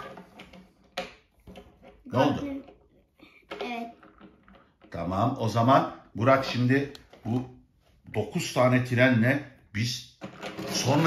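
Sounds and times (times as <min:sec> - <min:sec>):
toy trains clicking and knocking: 0:00.0 - 0:07.4, 0:10.2 - 0:11.0.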